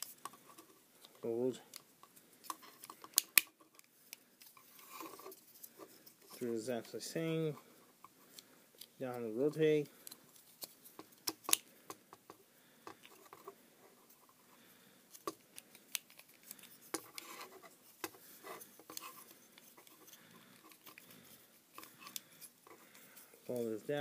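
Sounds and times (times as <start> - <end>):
faint rubbing: 4.4 - 11.0, 16.2 - 24.0.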